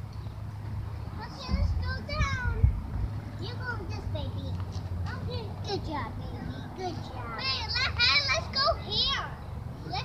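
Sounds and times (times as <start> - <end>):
young children calling out: 5.0 - 10.0.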